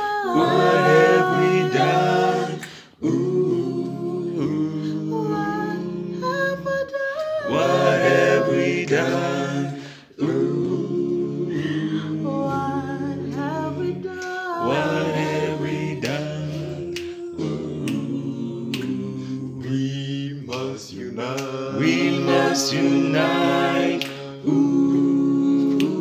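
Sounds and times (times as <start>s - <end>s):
group singing a cappella: 0.0s - 26.0s.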